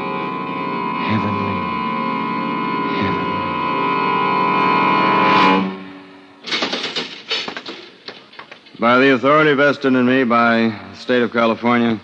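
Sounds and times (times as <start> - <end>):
orchestral sustained chord: 0.0 - 6.4
clatter of clicks and knocks: 6.4 - 8.8.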